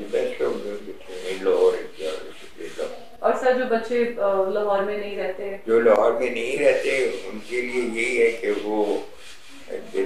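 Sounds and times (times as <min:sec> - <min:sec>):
soft rubbing noise: 0:00.0 - 0:04.0, 0:06.2 - 0:10.0
person talking: 0:05.7 - 0:10.0.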